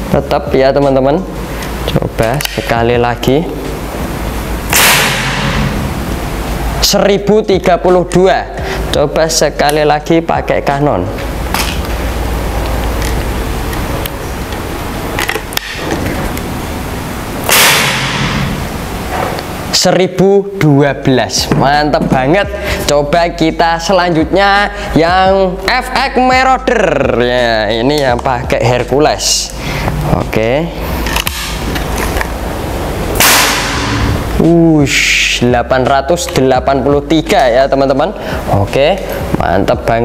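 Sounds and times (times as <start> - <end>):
steady low hum: 0.0 - 40.0
air rifle shot: 4.7 - 5.8, 17.4 - 18.6, 33.2 - 34.2.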